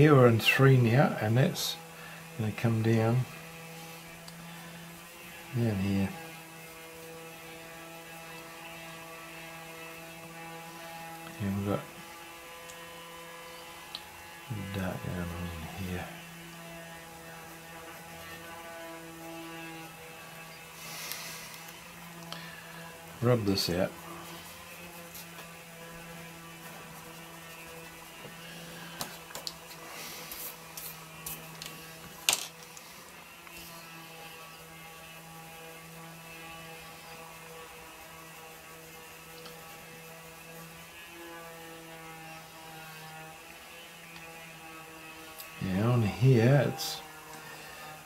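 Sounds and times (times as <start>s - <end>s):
steady machine hum: 0.0s - 48.0s
pencil and eraser scratching paper: 23.0s - 32.2s, 33.2s - 41.0s.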